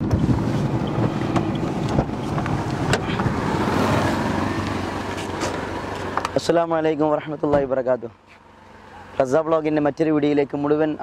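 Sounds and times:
wind noise on microphone: 0.0 - 5.5
car engine idling: 0.0 - 11.0.

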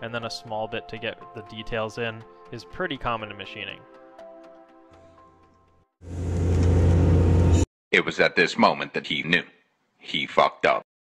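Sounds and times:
machine grinding drone: 6.0 - 7.6.

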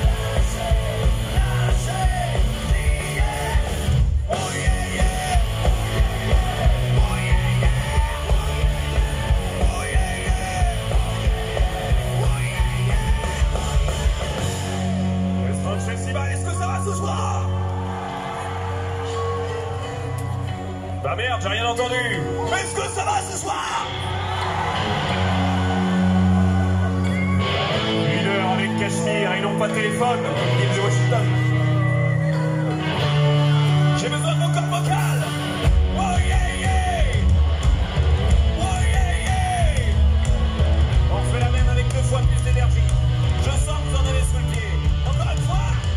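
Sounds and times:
man singing: 0.0 - 14.2, 35.9 - 37.2, 38.6 - 40.1
heavy drums: 0.0 - 15.7, 34.8 - 45.9
live rock band playing: 0.0 - 45.9.

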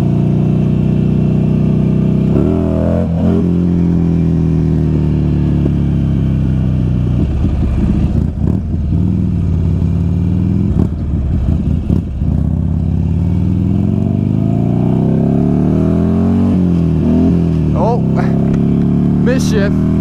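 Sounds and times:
motorcycle engine running: 0.0 - 20.0.

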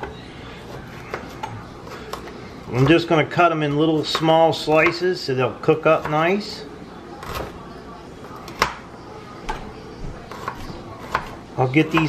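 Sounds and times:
knife tapping cutting board: 10.3 - 12.0.

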